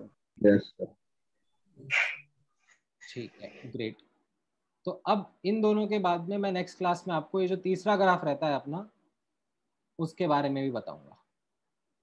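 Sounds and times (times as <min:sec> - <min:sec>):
person sneezing: 0:01.8 - 0:02.3.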